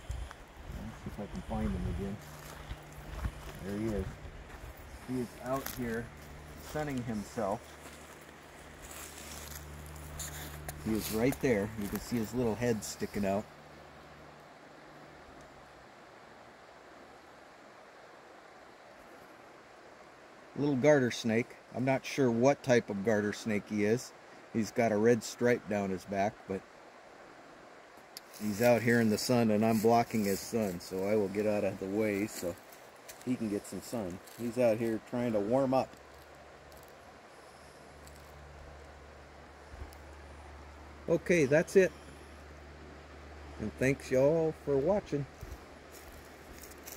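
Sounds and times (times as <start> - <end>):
steady low hum: 0.0 - 22.0, 22.6 - 46.9
outdoor ambience hiss: 0.0 - 46.9.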